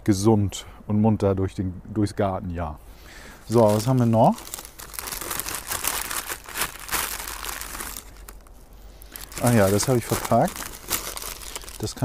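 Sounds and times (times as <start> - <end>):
paper packet crinkling: 3.4 - 12.0.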